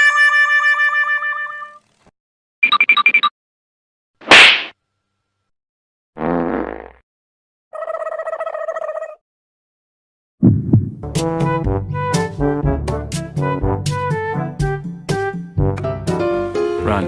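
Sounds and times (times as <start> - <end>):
loud slap effect: 4.2 - 4.7, 10.4 - 11.0
background music: 11.0 - 17.0.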